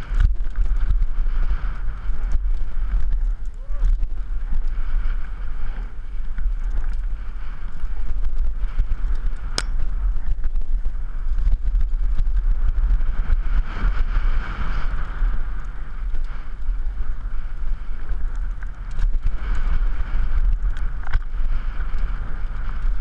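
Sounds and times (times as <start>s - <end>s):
mountain bike rumbling and rattling: 0.0s - 23.0s
wind buffeting microphone: 0.0s - 23.0s.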